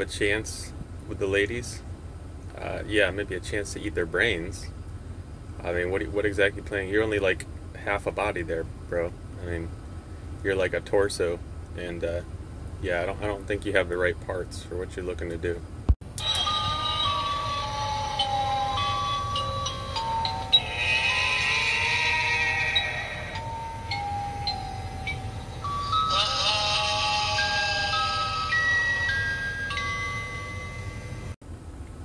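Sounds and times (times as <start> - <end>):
electronic melody of stepped tones: 23.3 - 26.2.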